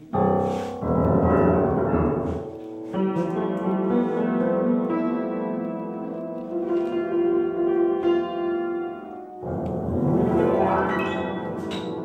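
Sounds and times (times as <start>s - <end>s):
upright piano playing: 0.0s - 12.0s.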